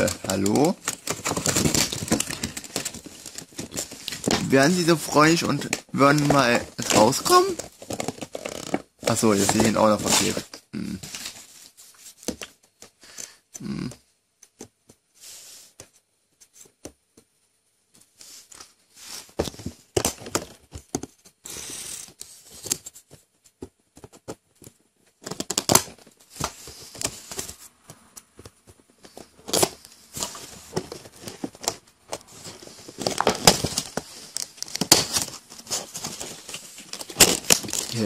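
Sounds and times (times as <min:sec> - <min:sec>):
plastic blister pack crinkling: 0:00.0 - 0:10.4, 0:29.0 - 0:38.0.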